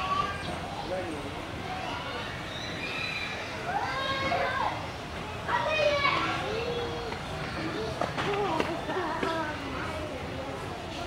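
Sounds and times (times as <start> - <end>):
children calling out and chattering: 0.0 - 11.0
murmur of crowd: 0.0 - 11.0.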